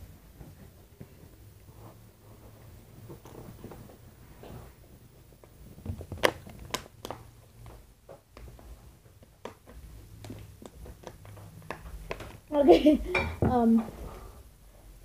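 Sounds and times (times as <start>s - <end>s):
plastic bottle crackling: 5.8s - 7.2s.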